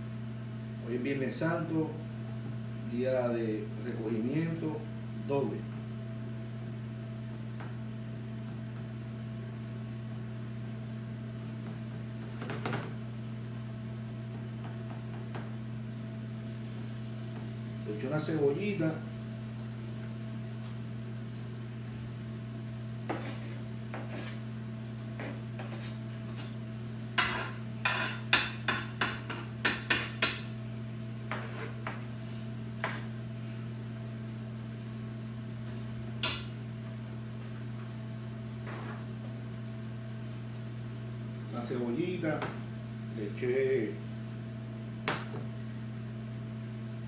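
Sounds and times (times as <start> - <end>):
low electrical hum: 0.0 - 47.0.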